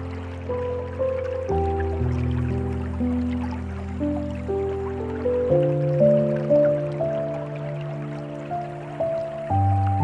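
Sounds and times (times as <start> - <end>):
dripping water: 0.0 - 10.0
slow gentle piano music: 0.0 - 10.0.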